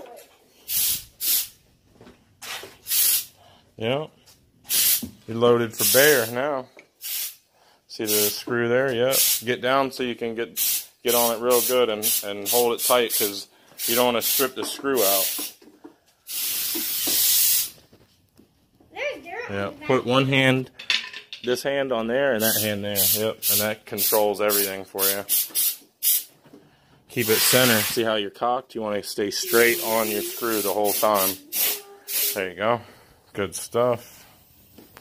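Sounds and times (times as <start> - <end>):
short bursts of hiss: 0.7 - 1.6, 2.4 - 3.4, 4.7 - 5.1, 7.0 - 7.4, 10.6 - 15.6, 16.3 - 17.8, 22.4 - 26.3, 27.2 - 28.0, 29.4 - 32.4
steady high hiss: 4.7 - 6.4, 7.0 - 7.4, 16.2 - 18.0, 27.1 - 28.2, 29.1 - 32.6.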